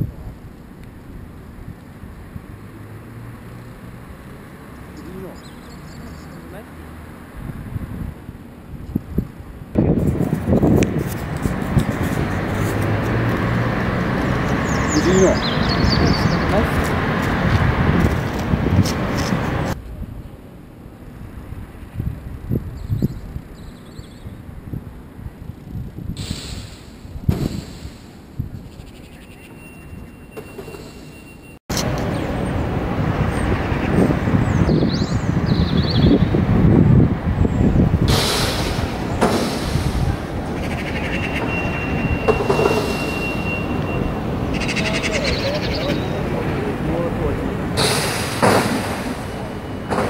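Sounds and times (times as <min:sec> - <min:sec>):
distant traffic: 0:00.0 - 0:50.0.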